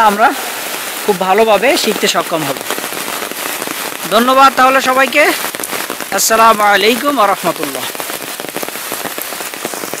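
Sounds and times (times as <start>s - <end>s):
rain falling on leaves: 0.0s - 10.0s.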